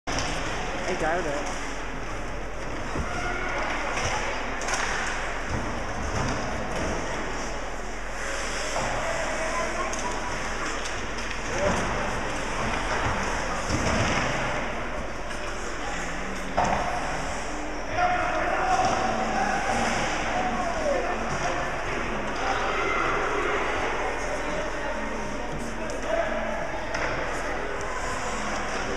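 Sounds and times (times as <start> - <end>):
spectators' voices and shouts: 17.2 - 28.9.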